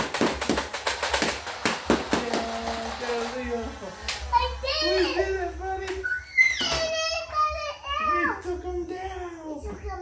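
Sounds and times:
young child squealing: 6.0 - 8.4.

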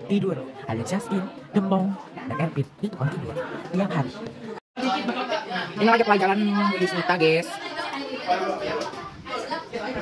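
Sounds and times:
students talking: 0.0 - 10.0.

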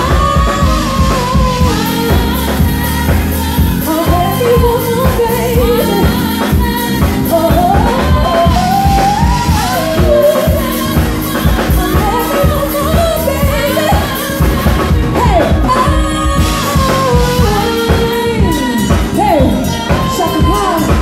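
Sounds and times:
band with steady beat: 0.0 - 21.0
person singing pop song: 0.0 - 21.0.

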